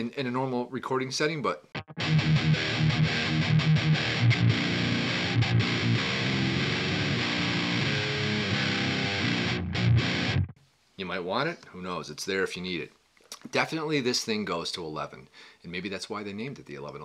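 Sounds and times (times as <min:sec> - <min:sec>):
distorted electric guitar riff: 0:01.7 - 0:10.6.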